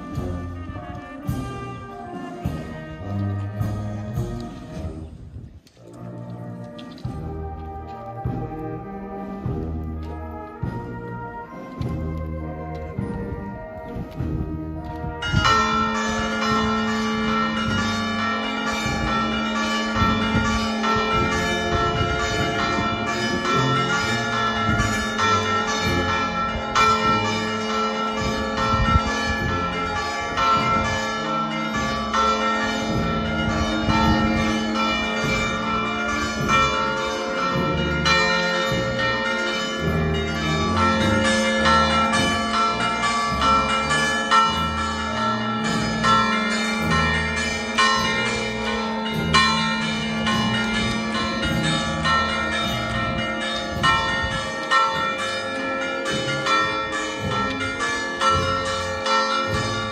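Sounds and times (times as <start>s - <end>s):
church bells pealing: 0.0s - 59.9s.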